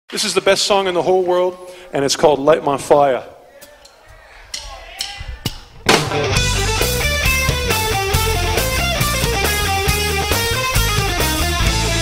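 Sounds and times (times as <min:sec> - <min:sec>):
rock band playing: 0:05.8 - 0:12.0.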